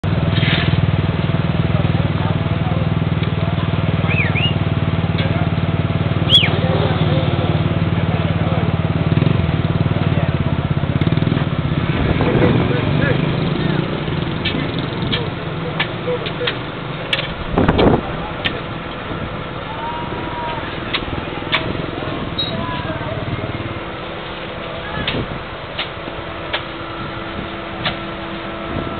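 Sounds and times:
diesel engine running: 0.0s - 28.9s
voices: 1.0s - 28.9s.

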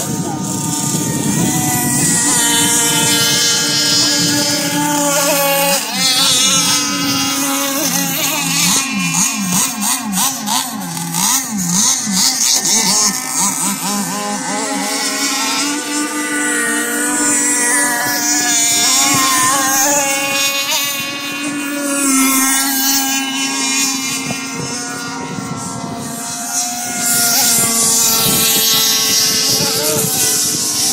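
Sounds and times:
model boat engines revving: 0.0s - 30.9s.

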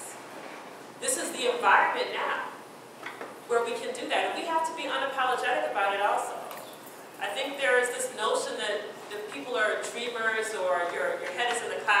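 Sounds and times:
woman speaking: 1.0s - 2.6s, 3.5s - 6.6s, 7.2s - 12.0s.

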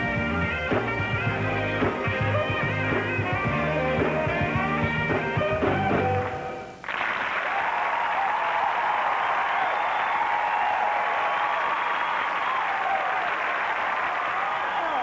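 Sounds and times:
audience applause: 6.2s - 15.0s
cheering voices: 7.4s - 15.0s.

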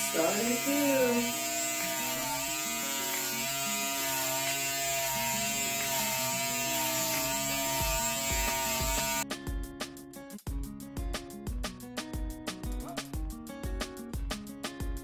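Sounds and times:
hair clippers buzzing: 0.0s - 9.2s
background music with beat: 7.1s - 15.0s.

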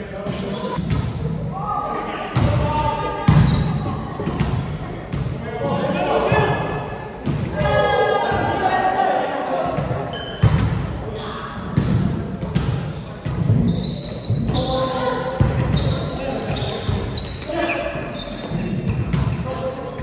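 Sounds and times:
players shouting: 7.5s - 9.8s.

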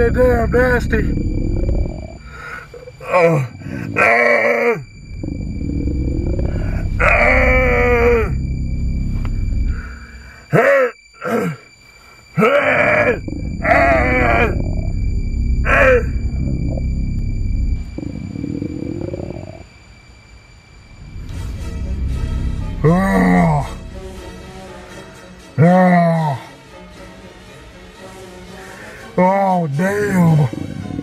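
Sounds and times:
steady low rumble: 0.0s - 4.2s, 4.8s - 10.5s, 13.0s - 20.0s, 20.8s - 24.9s
man groaning: 2.3s - 4.8s, 6.6s - 8.4s, 10.5s - 11.7s, 12.4s - 14.8s, 15.7s - 16.2s, 22.8s - 23.8s, 25.6s - 26.5s.

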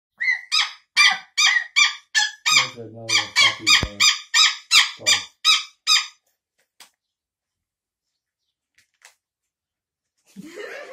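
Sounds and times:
gosling peeping: 0.2s - 6.1s
cockatoo peeping: 0.2s - 6.2s.

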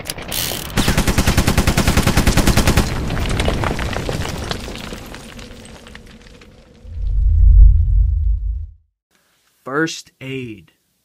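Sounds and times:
minigun firing burst: 0.8s - 3.1s.

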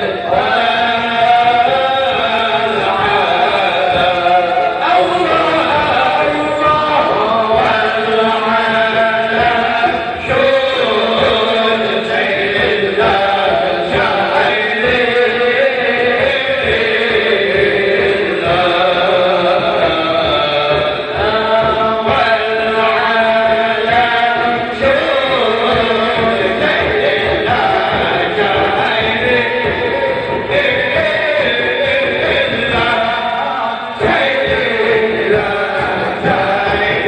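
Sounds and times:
man chanting through a pa: 0.0s - 37.0s.

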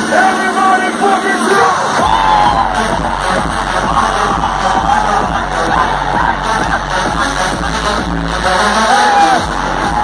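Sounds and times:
loud electronic dance music: 0.0s - 10.0s
crowd shouting: 1.0s - 7.3s, 8.7s - 10.0s.

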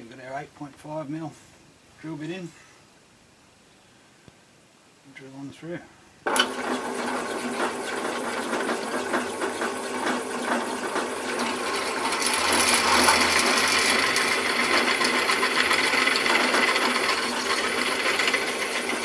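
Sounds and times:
drill press boring into metal: 6.3s - 19.0s.

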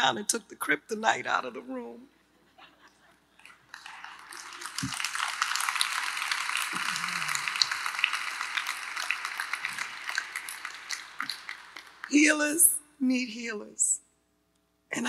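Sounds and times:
audience applauding: 3.4s - 12.5s.

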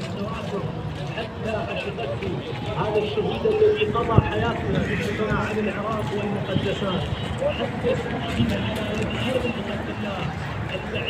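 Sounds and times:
man talking: 0.0s - 11.0s
people talking at once: 0.0s - 11.0s.

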